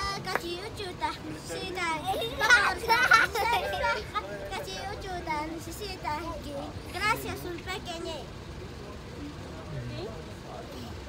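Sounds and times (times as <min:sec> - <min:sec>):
boy's voice performing: 0:00.0 - 0:03.3
girl laughing: 0:02.1 - 0:04.1.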